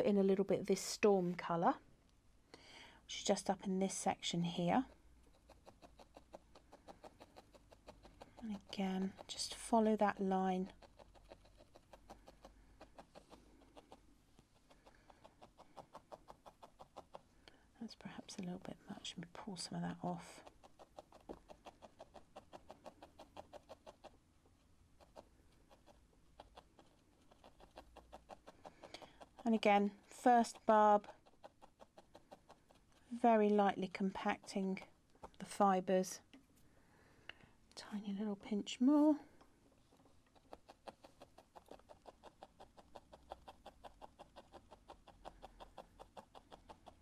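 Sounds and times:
quick light ticks of felting needle: 4.8s - 17.6s, 19.9s - 24.2s, 25.0s - 35.5s, 40.2s - 47.0s.

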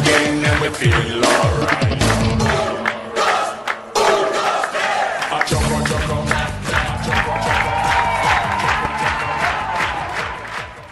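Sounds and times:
dance music beat: 0.0s - 10.9s
group of voices shouting: 2.5s - 5.3s.

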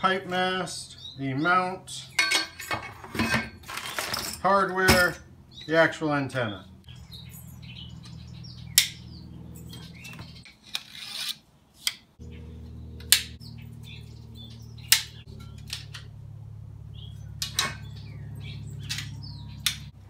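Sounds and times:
steady low hum: 0.0s - 10.5s, 12.2s - 20.0s
sharp metallic clicks: 14.8s - 16.2s, 18.8s - 20.0s.

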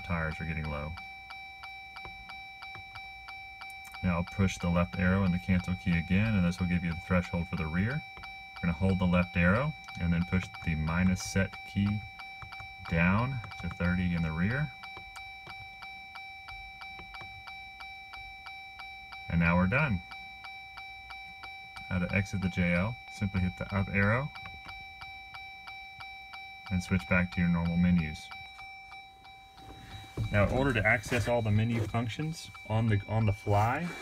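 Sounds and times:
faint regular ticking: 0.0s - 34.0s.

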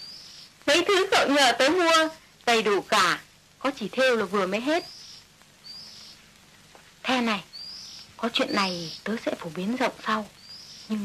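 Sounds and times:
woman speaking: 0.6s - 4.9s, 7.0s - 7.5s, 8.2s - 11.0s.

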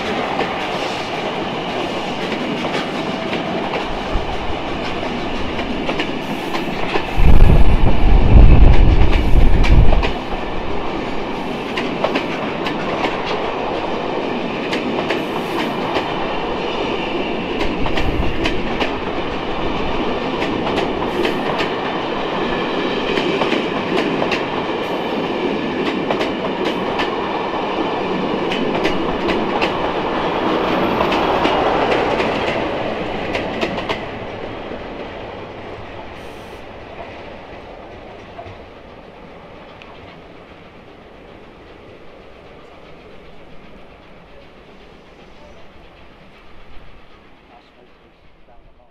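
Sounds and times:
train wheels clicking over rail joints: 0.0s - 48.2s
train rumble: 0.0s - 48.9s.

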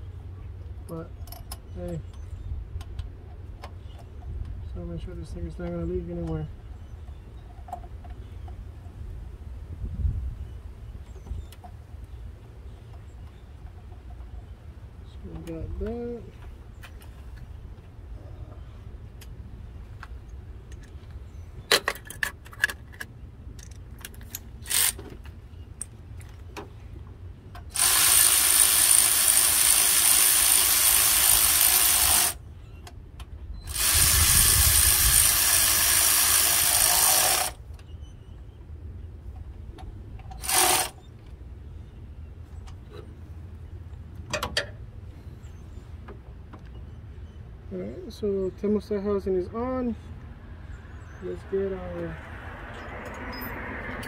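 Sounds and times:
cordless power tool running: 27.7s - 32.4s, 33.7s - 37.6s, 40.4s - 41.0s.

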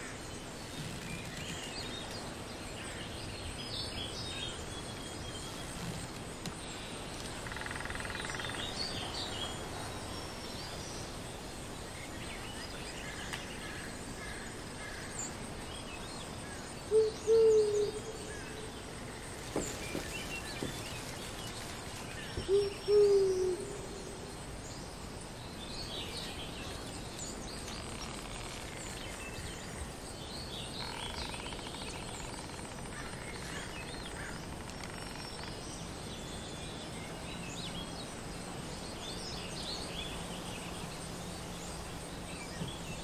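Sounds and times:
steady forest hush: 0.0s - 43.0s
owl hooting: 22.5s - 23.9s.

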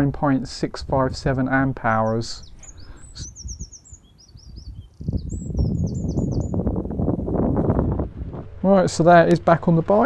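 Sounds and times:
small birds chirping: 0.0s - 9.5s.

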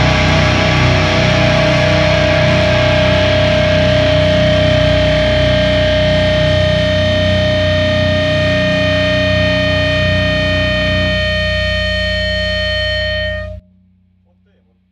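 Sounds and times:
distorted electric guitars: 0.0s - 13.6s
heavy bass: 0.0s - 14.1s.

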